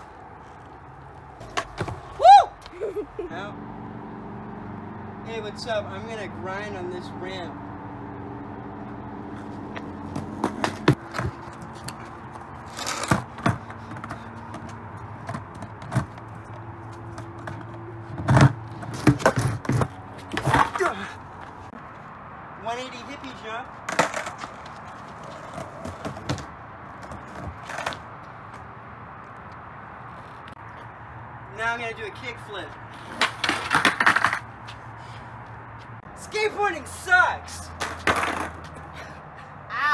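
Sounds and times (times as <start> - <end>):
skateboard clattering on concrete: 10.1 - 16.2, 17.2 - 21.1, 23.9 - 28.0, 33.1 - 34.5, 37.8 - 38.8.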